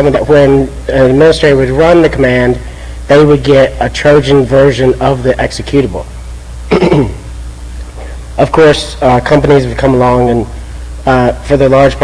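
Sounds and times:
steady low hum: 0.0s - 12.0s
man clearing his throat: 6.7s - 7.3s.

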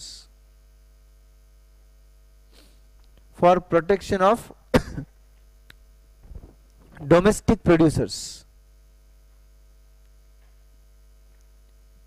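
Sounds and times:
electrical mains hum: 0.0s - 12.0s
person speaking: 3.3s - 4.6s, 6.3s - 8.5s.

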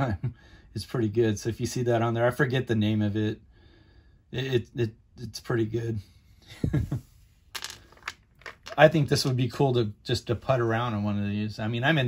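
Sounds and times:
man chuckling: 0.0s - 0.4s, 6.5s - 7.2s.

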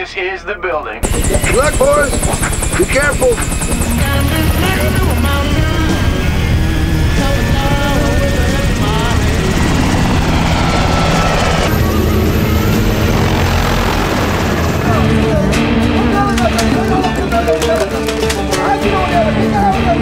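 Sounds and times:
film score music: 1.0s - 20.0s
military helicopters flying: 1.0s - 20.0s.

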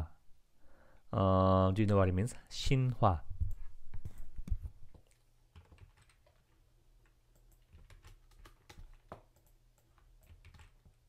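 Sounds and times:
keyboard typing: 4.0s - 11.0s.

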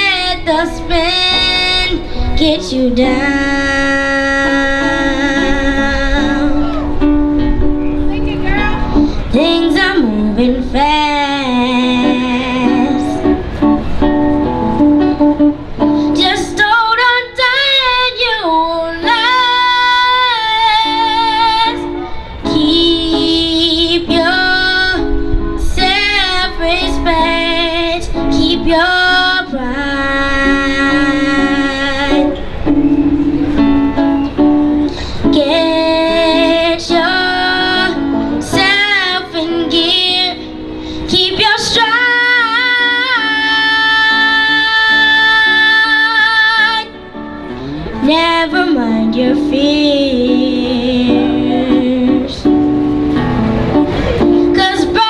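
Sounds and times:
girl singing into a microphone: 0.0s - 7.6s, 8.3s - 13.8s, 15.0s - 53.2s, 53.9s - 55.0s
instrumental accompaniment: 0.0s - 16.9s, 19.0s - 55.0s.

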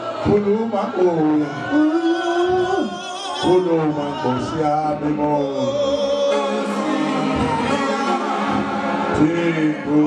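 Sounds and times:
choir singing sustained notes: 0.0s - 10.0s.

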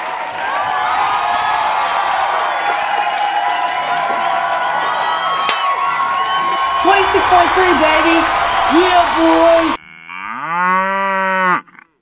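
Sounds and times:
cow mooing: 9.8s - 11.8s.

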